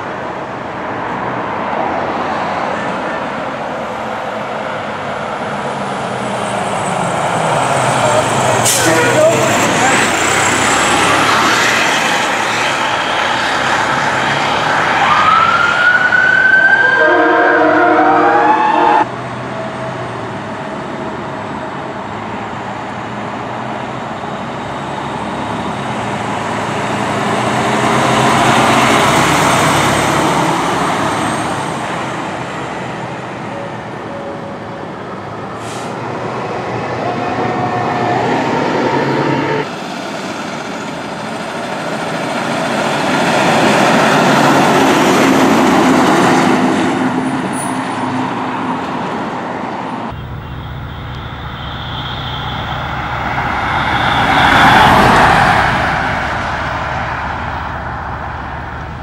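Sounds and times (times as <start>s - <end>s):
traffic: 0.0s - 59.0s
truck engine: 2.8s - 18.2s, 19.0s - 59.0s
siren sweeping up and down: 14.5s - 19.1s, 50.1s - 56.4s
horn blasts: 16.8s - 19.1s, 37.0s - 39.7s, 50.1s - 55.5s.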